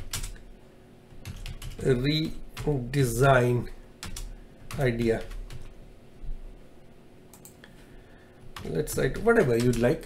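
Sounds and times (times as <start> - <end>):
typing on computer keyboard: 0.0 - 0.4, 1.2 - 1.8, 4.0 - 5.7, 8.6 - 10.0.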